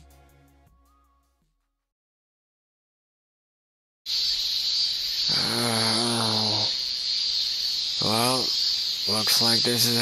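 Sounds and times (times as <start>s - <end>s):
steady high hiss: 4.1s - 10.0s
low voice groaning: 5.3s - 6.8s.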